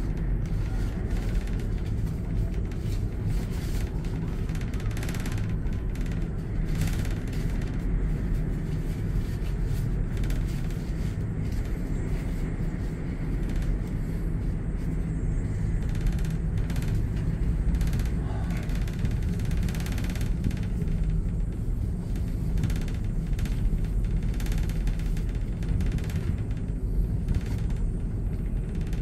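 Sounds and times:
cable car cabin rumble: 0.0s - 29.0s.

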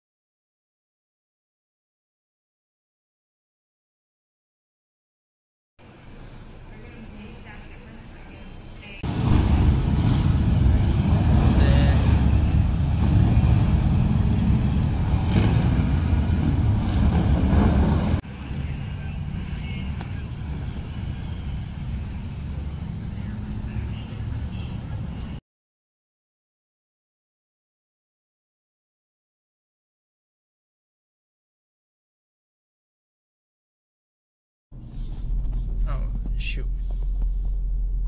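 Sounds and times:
indistinct voices: 5.8s - 15.3s, 35.7s - 36.9s
low rumble of traffic: 5.8s - 25.4s, 34.7s - 38.0s.

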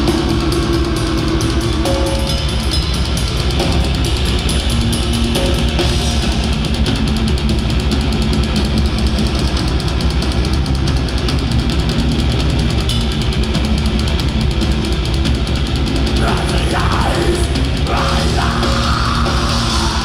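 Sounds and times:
distorted guitars and bass: 0.0s - 20.0s
metal band playing live: 0.0s - 20.0s
rapid drumming: 0.0s - 20.0s.

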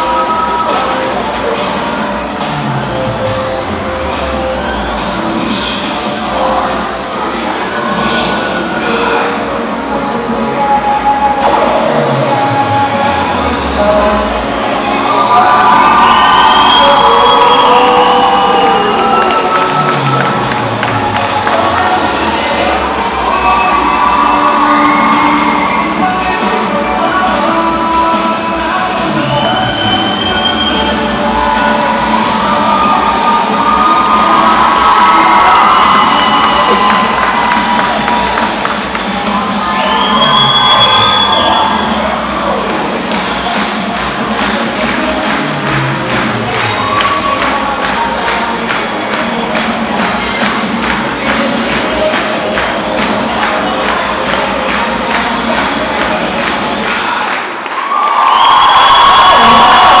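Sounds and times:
crowd cheering and screaming: 0.0s - 9.7s, 11.3s - 60.0s
loud dance music over speakers: 0.0s - 60.0s.

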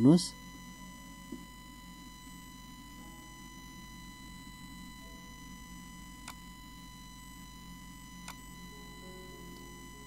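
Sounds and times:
electrical hum: 0.0s - 10.0s
thin high whine: 0.0s - 10.0s.

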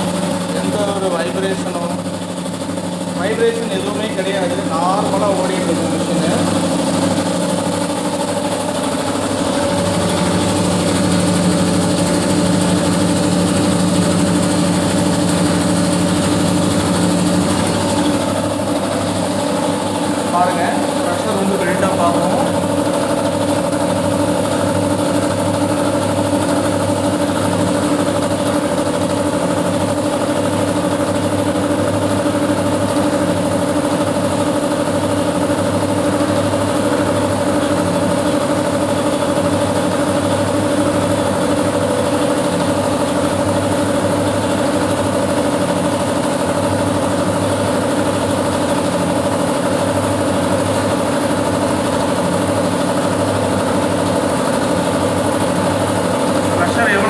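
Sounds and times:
air compressor running: 0.0s - 57.0s.

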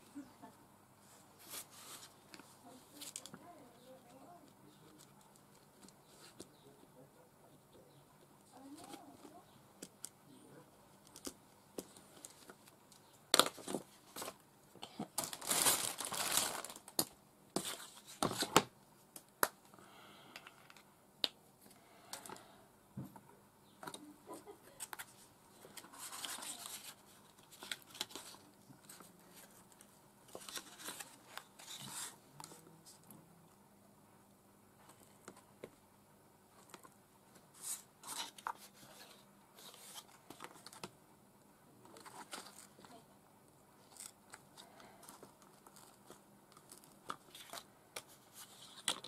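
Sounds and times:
paper rustling and crinkling: 13.4s - 14.4s, 15.0s - 18.7s, 24.8s - 32.6s, 36.6s - 40.9s, 41.8s - 43.0s, 43.8s - 49.0s.

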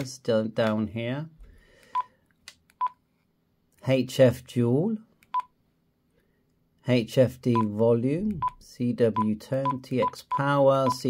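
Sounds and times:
radio keypad beeps: 9.7s - 11.0s.

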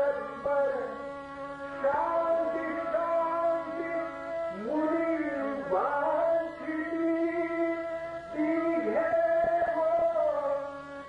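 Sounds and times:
instrumental accompaniment: 0.0s - 11.0s
man singing a long note: 0.0s - 11.0s.

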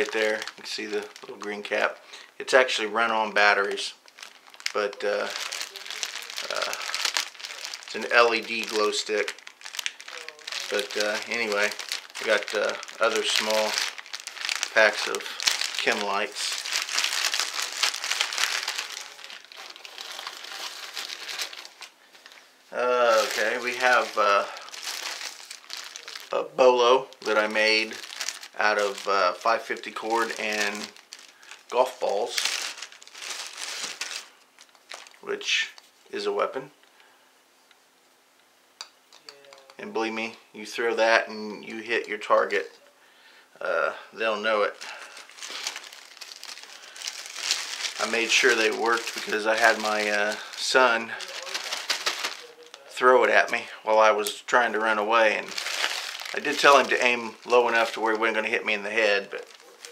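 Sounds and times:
plastic bag crinkling: 0.0s - 35.9s, 43.9s - 59.9s.

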